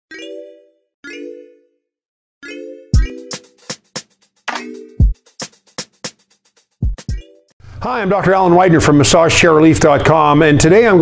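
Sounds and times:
ringing electronic jingle notes: 0.1 - 5.3.

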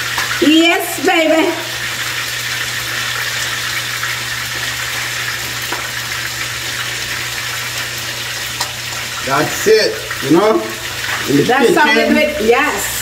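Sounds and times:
food sizzling in a skillet: 0.0 - 13.0.

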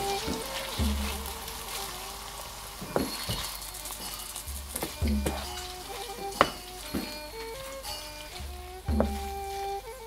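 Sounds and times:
chicken sizzling in a frying pan: 0.0 - 9.0
wooden spatula scraping a pan: 0.0 - 10.0
spatula knocking on pan: 4.8 - 7.4, 8.9 - 9.3.

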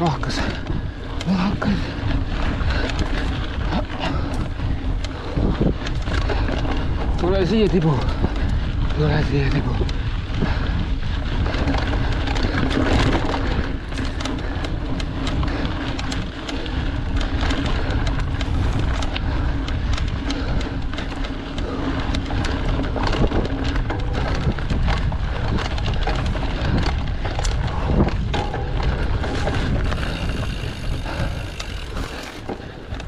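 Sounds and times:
bike rattling clicks and knocks: 0.0 - 33.0
tyres rumbling on dirt: 0.0 - 33.0.

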